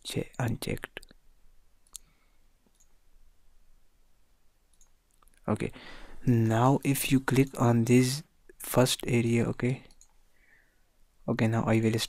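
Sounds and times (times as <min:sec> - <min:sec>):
computer mouse click: 0:01.8 - 0:02.1, 0:02.7 - 0:03.0, 0:04.7 - 0:05.4
faint ticks: 0:01.8 - 0:03.0.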